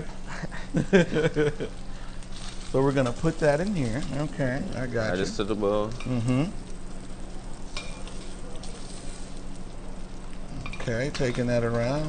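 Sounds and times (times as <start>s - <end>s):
chicken sizzling in butter: 0.6s - 12.0s
tongs clicking against pan: 5.9s - 6.8s, 7.7s - 8.7s.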